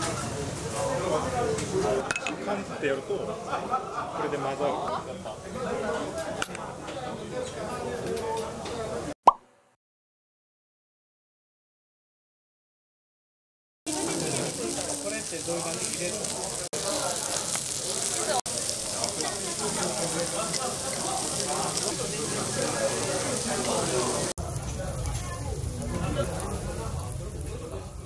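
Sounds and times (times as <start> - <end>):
voices chattering: 0.0 - 9.1, 13.9 - 28.0
meat sizzling on grill plate: 13.9 - 28.0.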